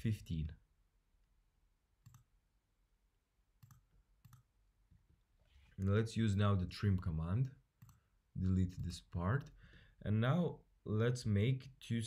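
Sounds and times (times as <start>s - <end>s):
faint computer mouse clicks: 2.0s - 2.3s, 3.6s - 4.5s.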